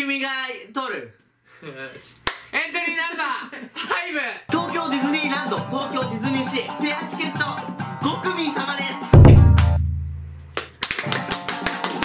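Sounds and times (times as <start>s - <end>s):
deep boom: 9.2s - 10.5s
people clapping rapidly: 9.5s - 9.8s, 10.5s - 12.0s.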